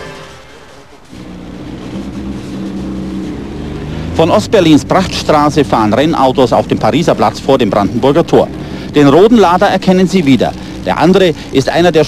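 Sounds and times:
racing car engine running: 0.8s - 12.0s.

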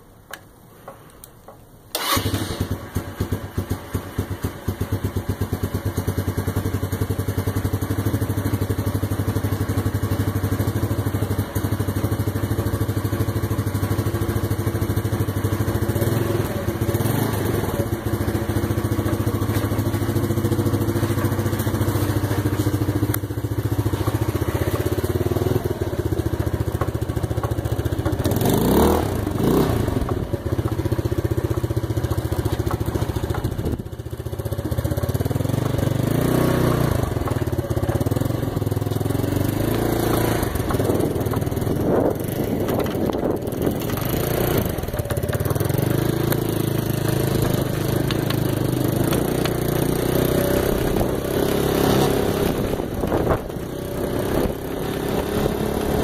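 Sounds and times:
trike engine starting and idling: 1.9s - 56.0s
engine revving: 2.0s - 3.4s, 15.5s - 31.4s, 34.7s - 56.0s.

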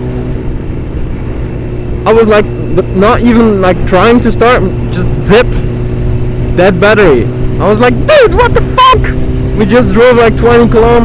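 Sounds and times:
motorcycle engine cruising: 0.0s - 11.0s
wind rumbling on microphone: 0.0s - 11.0s.

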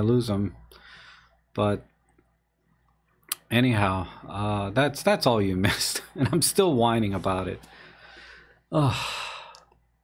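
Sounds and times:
man sighing: 8.1s - 9.7s.

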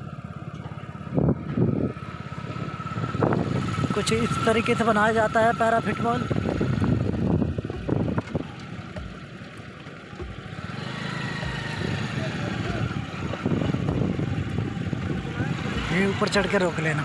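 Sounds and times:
vehicle engine and road rumble: 0.0s - 17.0s.

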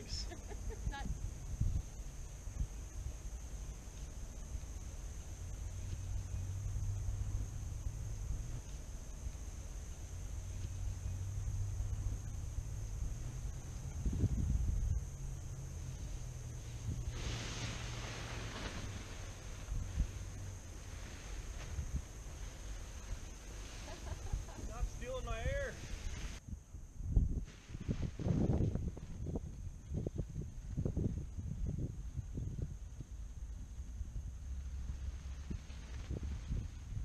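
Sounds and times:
paraglider wing rustling: 0.0s - 26.4s, 27.2s - 37.0s
distant paramotor engine drone: 3.8s - 25.0s
wind gust on microphone: 11.2s - 37.0s.

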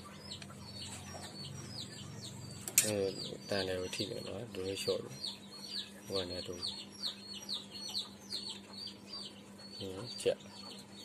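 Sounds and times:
chicks chirping: 0.0s - 11.0s.

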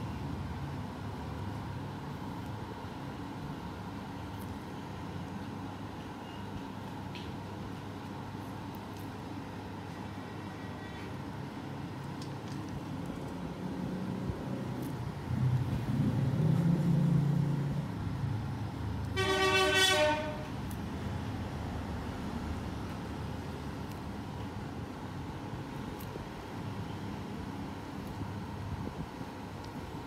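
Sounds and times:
horn-like tone: 19.2s - 20.5s.

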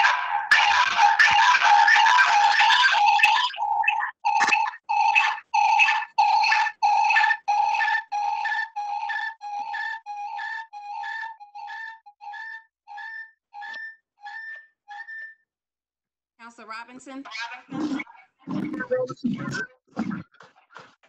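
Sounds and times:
pulsing electronic beeps: 0.5s - 15.4s, 18.5s - 20.2s.

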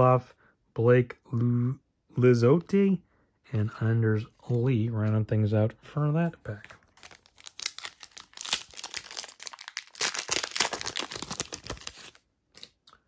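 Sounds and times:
card pack wrapper crinkling: 6.5s - 12.9s.

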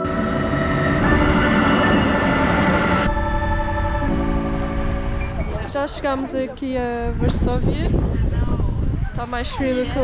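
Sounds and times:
music of held chords: 0.0s - 5.7s
low rumble: 0.0s - 9.3s
passenger train noise: 0.0s - 10.0s.

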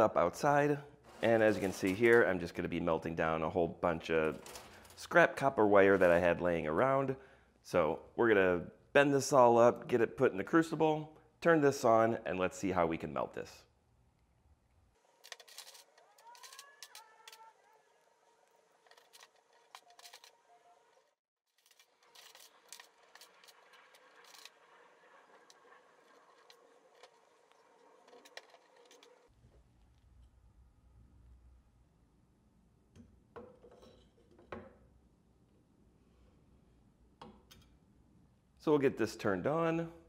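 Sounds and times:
wire clicking and rustling: 15.2s - 17.6s, 18.4s - 20.4s, 21.5s - 24.7s.

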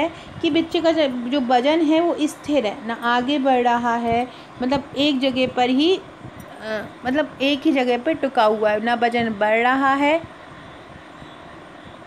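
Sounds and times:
woman speaking: 0.0s - 10.3s.

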